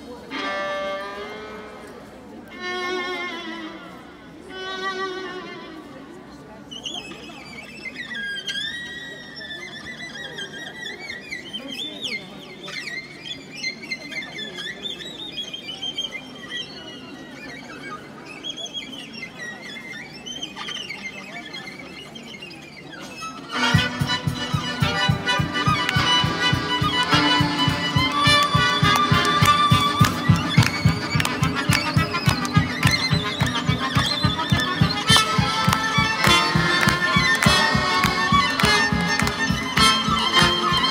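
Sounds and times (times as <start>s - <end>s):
accordion: 0.0s - 6.0s, 23.2s - 40.9s
violin melody with trills: 0.2s - 6.3s, 19.4s - 40.9s
drum accompaniment: 23.6s - 40.9s.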